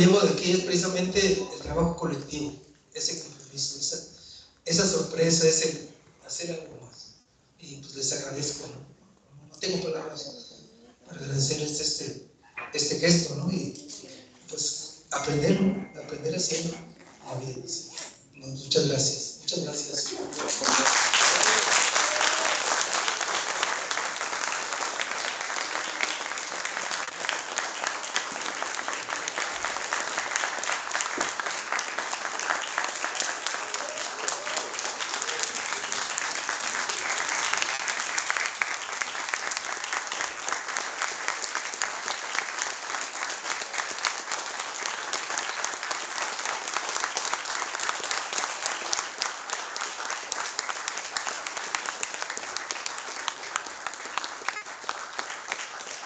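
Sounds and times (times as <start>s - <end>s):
audience applauding: 19.9s - 56.0s.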